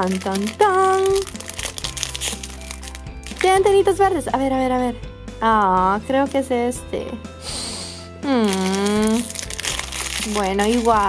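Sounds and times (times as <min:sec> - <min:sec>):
foil bag crinkling: 0:00.0 - 0:03.7, 0:08.4 - 0:11.0
soft background music: 0:00.0 - 0:11.0.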